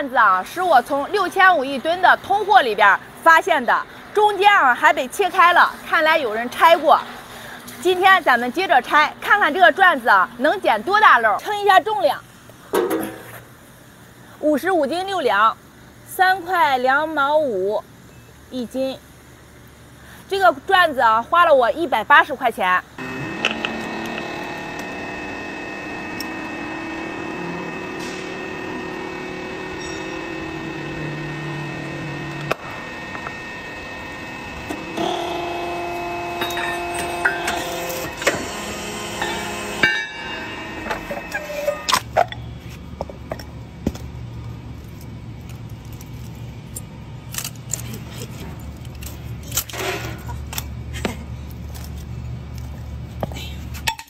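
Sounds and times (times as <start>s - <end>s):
hydraulic puller whining hum: 23.0s - 42.5s.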